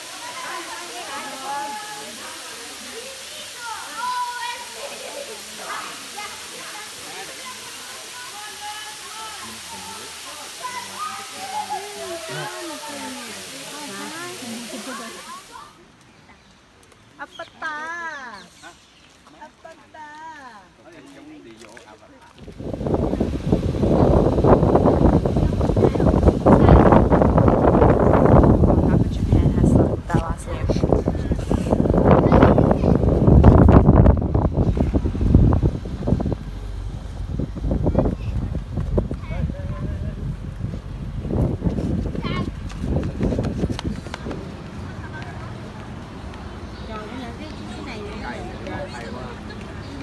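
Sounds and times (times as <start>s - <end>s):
children's voices playing: 0.0s - 16.4s, 22.9s - 41.2s, 41.8s - 50.0s
high-pitched child cry: 11.0s - 12.8s.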